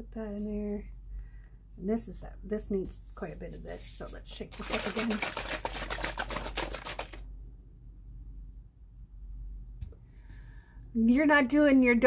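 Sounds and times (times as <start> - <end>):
paint bottle shaken rattling: 4.4 - 7.2.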